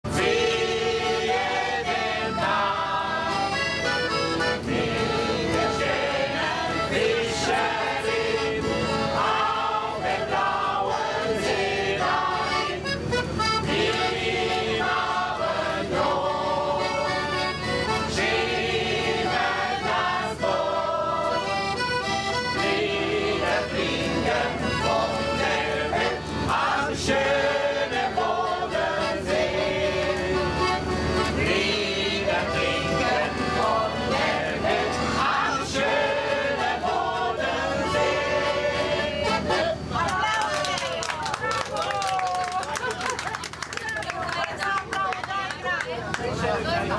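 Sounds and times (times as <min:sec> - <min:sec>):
group of people singing: 0:00.1 - 0:40.0
piano accordion playing: 0:00.1 - 0:40.0
hands clapping along: 0:04.6 - 0:05.8, 0:40.0 - 0:46.4.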